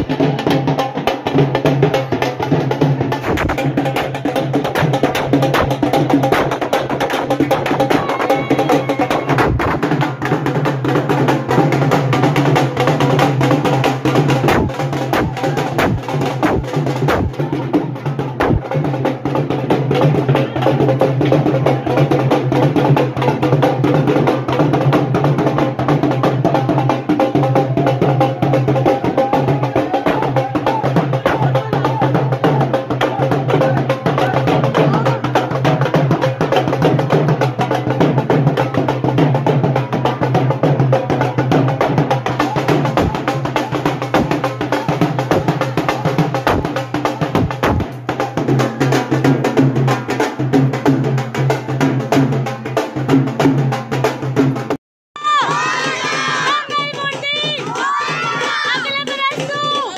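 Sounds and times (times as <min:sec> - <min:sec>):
fast dense drumming: 0:00.0 - 0:59.9
music: 0:00.0 - 0:59.9
group shouting and cheering: 0:07.6 - 0:09.8, 0:55.2 - 0:59.9.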